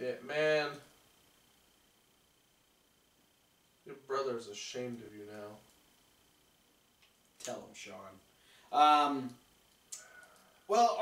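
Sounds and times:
faint high hum: 0.0s - 11.0s
steady hiss: 0.0s - 11.0s.

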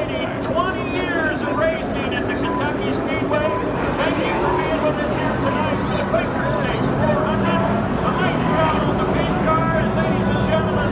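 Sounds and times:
crowd chatter: 0.0s - 10.9s
race car engines droning: 0.0s - 10.9s.

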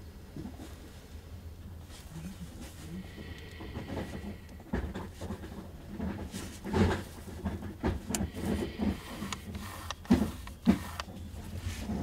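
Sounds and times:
soft rubbing of focus ring: 8.3s - 12.0s.

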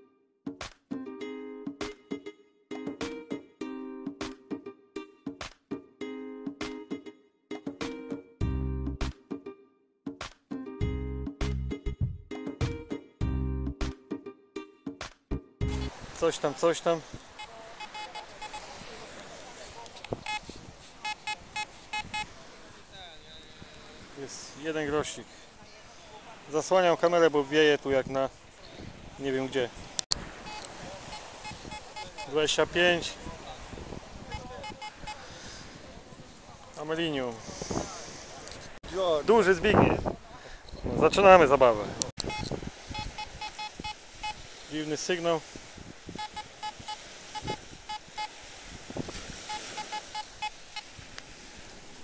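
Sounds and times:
metal detector beeping: 15.7s - 15.9s, 17.2s - 18.8s, 20.0s - 22.3s, 30.4s - 32.6s, 34.3s - 35.2s, 42.2s - 44.4s, 46.2s - 48.4s, 49.4s - 50.9s.

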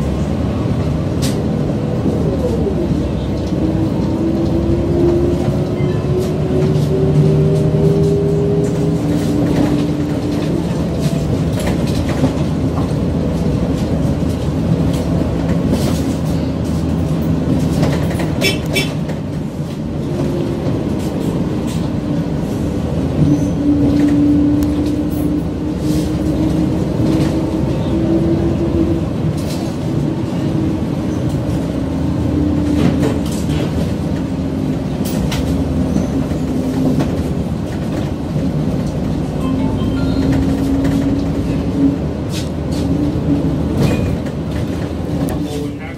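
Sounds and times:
bus engine droning: 0.0s - 45.9s
road noise: 0.0s - 45.9s.

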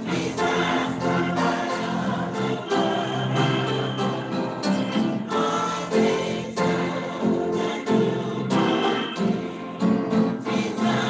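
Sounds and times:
choir singing gospel: 0.0s - 11.0s.

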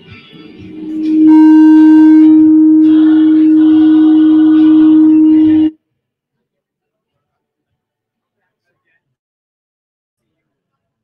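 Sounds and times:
soft music: 0.0s - 5.7s
loud feedback tone: 0.5s - 5.8s.

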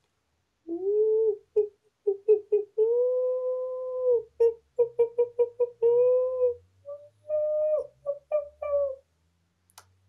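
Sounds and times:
man imitating gibbon hoots: 0.7s - 9.0s.

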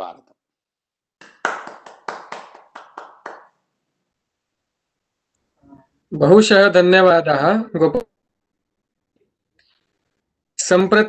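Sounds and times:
hands clapping: 1.2s - 3.6s.

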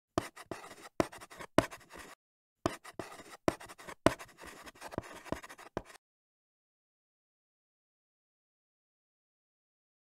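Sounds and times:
chalk tapping and scratching: 0.2s - 6.0s.

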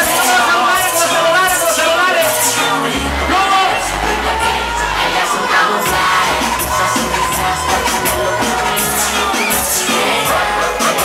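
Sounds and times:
crowd shouting along: 0.0s - 11.0s
reggaeton beat with vocal: 0.0s - 11.0s.

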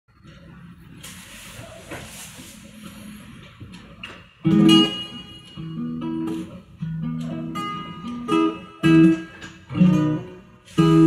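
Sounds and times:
room hiss: 0.9s - 3.5s, 10.5s - 11.0s.

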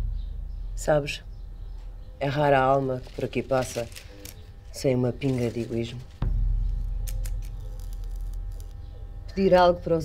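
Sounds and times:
deep low rumble: 0.0s - 9.9s.

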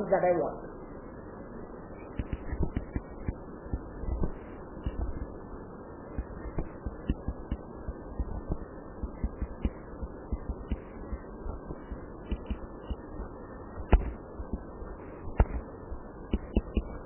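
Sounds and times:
low background noise: 0.0s - 17.0s
stylus tapping on pen tablet: 2.2s - 5.2s, 9.2s - 10.9s, 12.3s - 13.0s, 16.3s - 16.9s.

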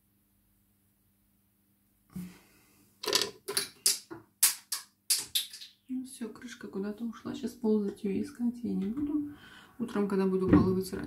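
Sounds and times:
plastic cap clattering on floor: 3.0s - 5.8s.

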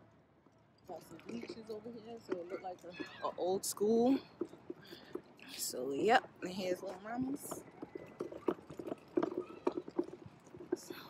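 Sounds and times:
stroller rattling: 0.8s - 11.0s
footsteps on asphalt: 1.1s - 11.0s.

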